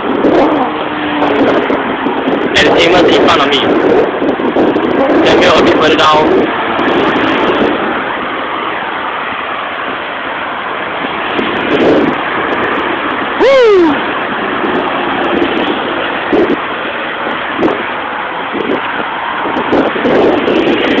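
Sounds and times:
road traffic: 0.0 - 21.0
wind: 0.0 - 21.0
loud sound falling in pitch: 13.4 - 14.0.

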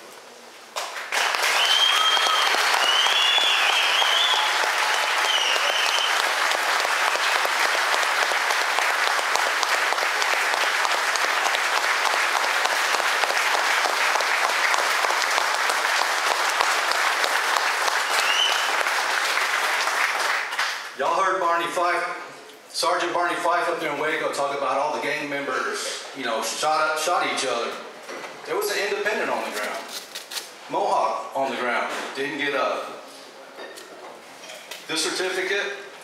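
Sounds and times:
people applauding: 0.8 - 21.0
whistles: 1.2 - 6.3, 18.0 - 18.8.

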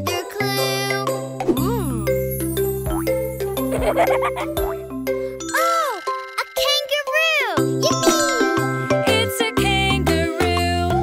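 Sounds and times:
children's song with chiming bells: 0.0 - 11.0
cartoon child's voice exclaiming: 5.5 - 8.4.

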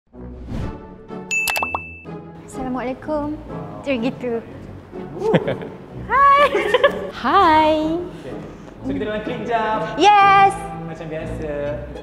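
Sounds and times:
bright ding: 1.3 - 2.1.

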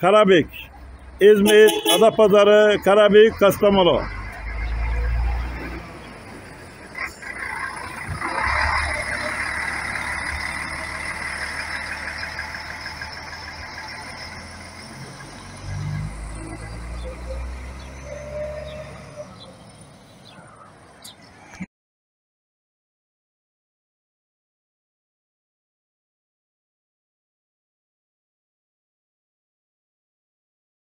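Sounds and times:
coach diesel engine pulling away: 2.2 - 20.6.

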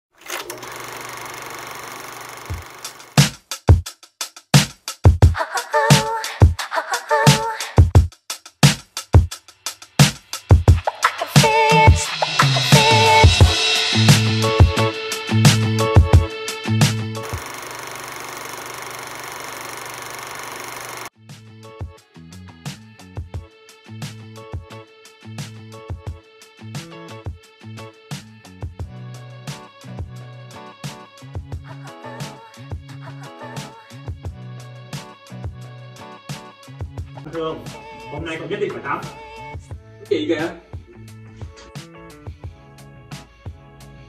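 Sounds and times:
film projector clattering: 0.1 - 3.2, 17.2 - 21.1
projector clicks: 0.2 - 3.2, 17.2 - 21.1.

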